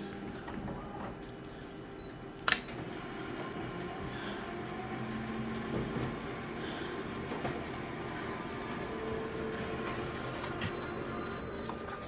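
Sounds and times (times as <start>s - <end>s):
photocopier hum: 0.0s - 12.0s.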